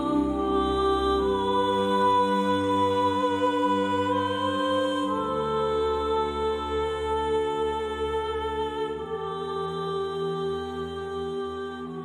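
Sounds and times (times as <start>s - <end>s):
ambient held chords: 0.0s - 12.0s.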